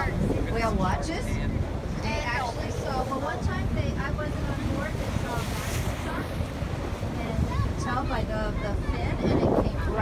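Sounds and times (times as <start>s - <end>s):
low rumble of boat and water: 0.0s - 10.0s
wind buffeting microphone: 0.0s - 10.0s.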